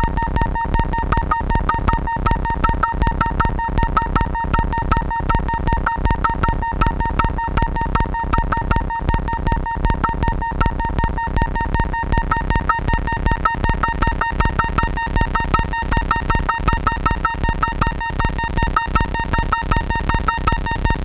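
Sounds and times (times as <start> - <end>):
fast clicking synth pulses: 0.0 - 21.0.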